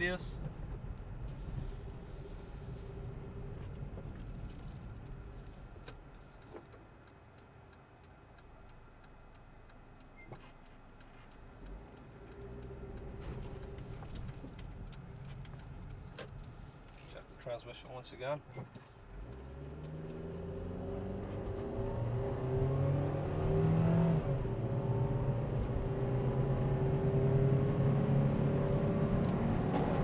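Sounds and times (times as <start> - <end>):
road and engine rumble: 0.0 - 30.0
turn signal ticking: 0.4 - 22.6.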